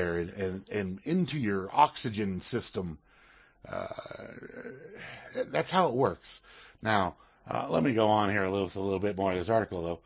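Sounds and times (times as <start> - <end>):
man saying uh: 3.7 - 9.9.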